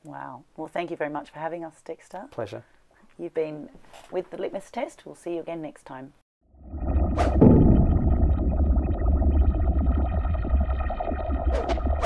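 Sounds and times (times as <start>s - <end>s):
deep bass: 6.8s - 12.0s.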